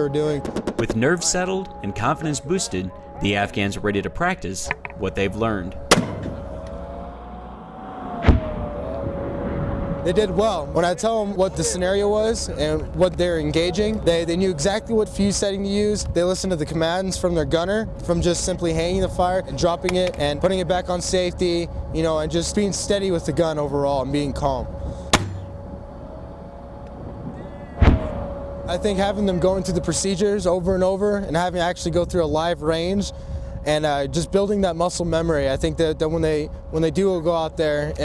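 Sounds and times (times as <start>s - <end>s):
faint steady hum: 0.0s - 38.0s
low rumble: 0.0s - 38.0s
mortar firing: 5.9s - 6.4s, 25.1s - 25.5s
mortar boom: 27.8s - 28.3s.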